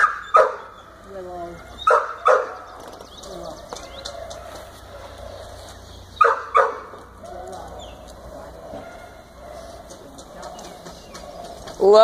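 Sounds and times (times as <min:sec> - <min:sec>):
dog barking: 0:00.0 - 0:02.8, 0:03.9 - 0:11.9.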